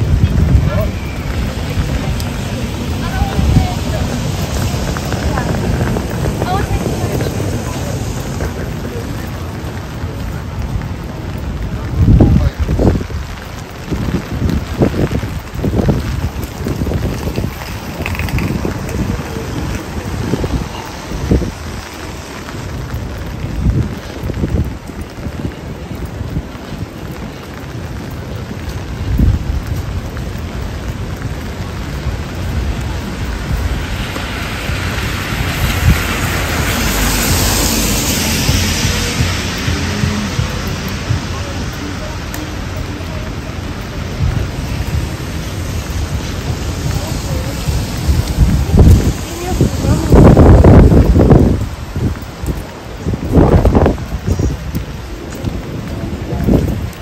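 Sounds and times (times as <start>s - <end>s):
rain on wet pavement: 0.0s - 57.0s
wind buffeting microphone: 0.0s - 57.0s.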